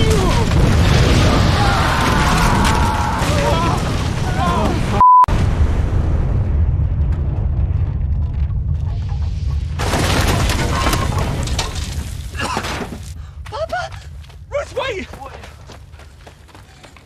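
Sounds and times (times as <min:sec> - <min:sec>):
deep explosion rumble: 0:00.0 - 0:12.4
debris crashing and shattering: 0:00.0 - 0:13.2.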